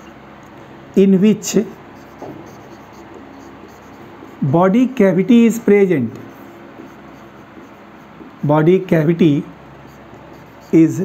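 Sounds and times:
marker pen rubbing on whiteboard: 1.4 - 11.0.

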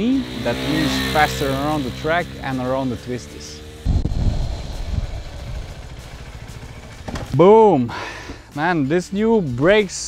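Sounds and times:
motorcycle engine rumble: 0.0 - 8.5.

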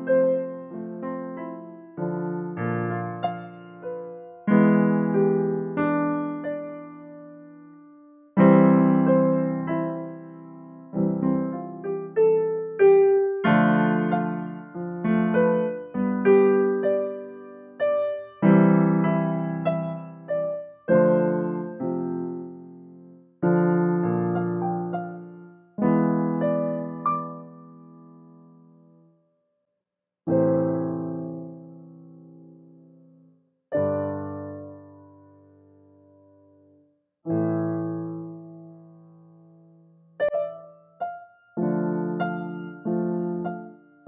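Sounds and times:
keyboard piano chords: 0.0 - 29.2, 30.3 - 44.0
keyboard piano chord: 37.3 - 44.0.

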